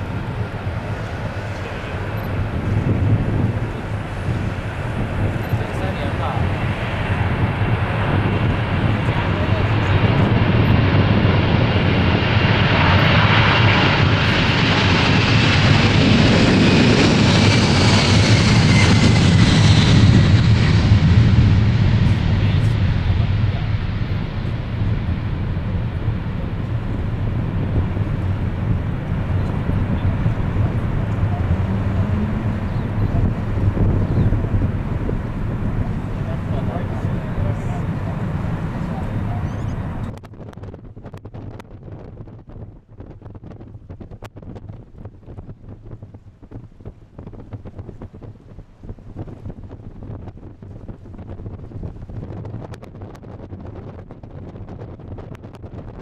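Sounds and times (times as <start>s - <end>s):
jet engines at takeoff: 0.0s - 56.0s.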